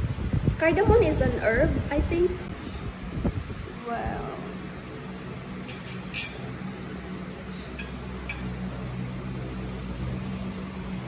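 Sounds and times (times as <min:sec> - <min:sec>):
steady low hum: 0:00.0 - 0:11.0
metal spoon clinking on dishes: 0:05.6 - 0:06.5, 0:07.8 - 0:08.6.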